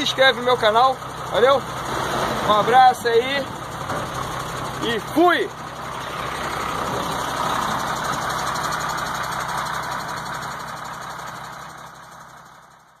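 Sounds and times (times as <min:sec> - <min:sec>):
diesel truck engine idling: 0:00.0 - 0:13.0.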